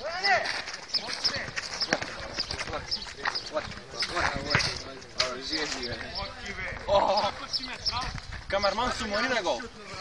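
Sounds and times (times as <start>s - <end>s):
running footsteps: 0.0s - 10.0s
football kicked and bouncing on asphalt: 0.4s - 4.8s.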